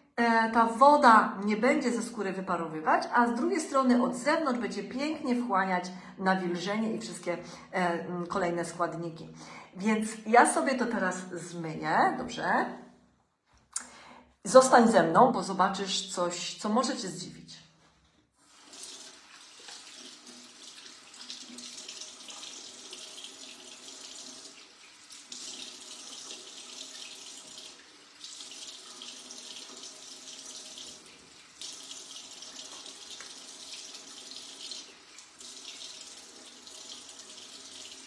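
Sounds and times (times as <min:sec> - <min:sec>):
tap water running: 0:18.2 - 0:38.0.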